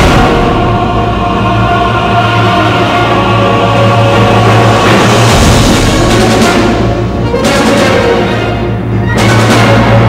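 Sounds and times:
choir holding sustained notes: 0.0s - 10.0s
low drone: 0.0s - 10.0s.

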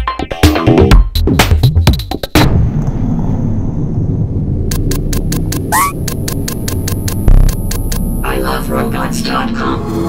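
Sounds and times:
low electronic rumble: 2.6s - 8.7s
sharp clicks: 4.7s - 8.1s.

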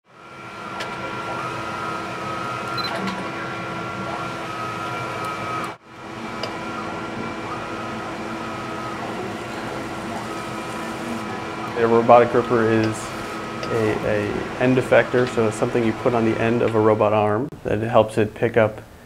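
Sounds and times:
lab machinery hum and whine: 0.1s - 19.0s.

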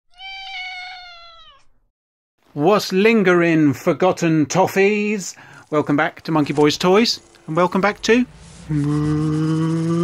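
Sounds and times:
cat meowing: 0.1s - 1.8s.

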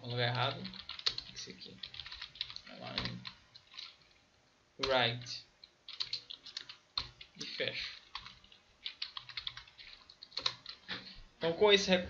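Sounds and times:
typing on computer keyboard: 0.6s - 4.1s, 5.9s - 10.9s.

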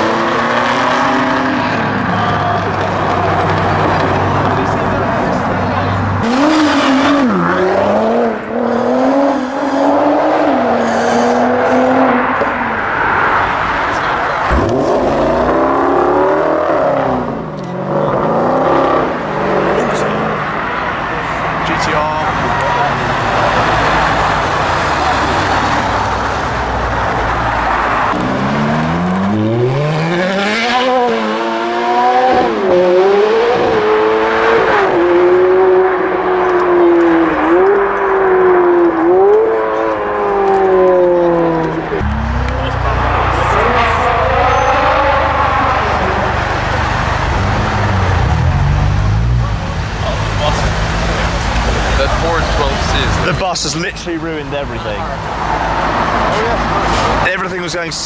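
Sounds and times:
passing traffic: 0.0s - 58.0s
sports car engines accelerating: 0.0s - 58.0s.

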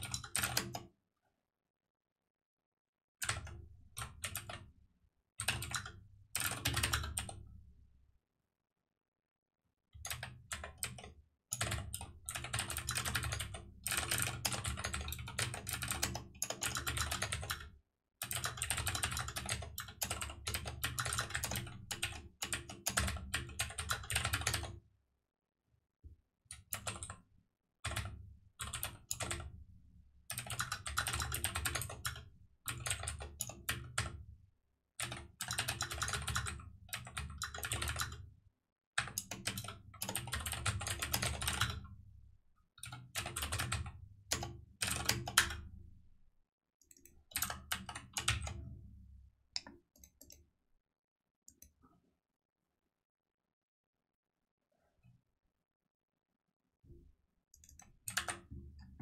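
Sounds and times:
typing on computer keyboard: 0.0s - 0.8s, 3.2s - 4.7s, 5.4s - 7.4s, 10.0s - 24.8s, 26.6s - 27.2s, 27.8s - 29.5s, 30.3s - 34.2s, 35.0s - 38.2s, 39.0s - 41.8s, 42.8s - 45.6s, 46.9s - 48.8s, 57.6s - 58.6s.

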